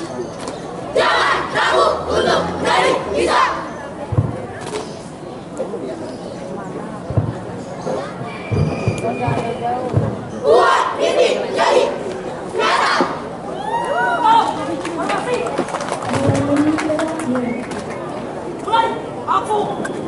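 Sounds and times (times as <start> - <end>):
people shouting: 1.0 - 3.7, 10.4 - 12.0, 12.6 - 14.5
boots stamping in unison: 8.5 - 10.3.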